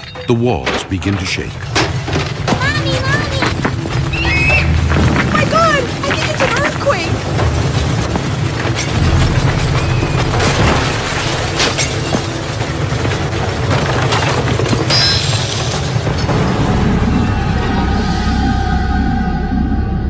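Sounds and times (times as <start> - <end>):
continuous low rumble: 0.2 - 20.0.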